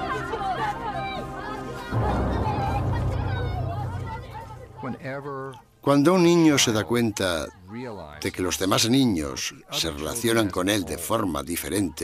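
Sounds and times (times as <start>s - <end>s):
quiet background music: 0.0s - 12.0s
voices chattering: 0.0s - 12.0s.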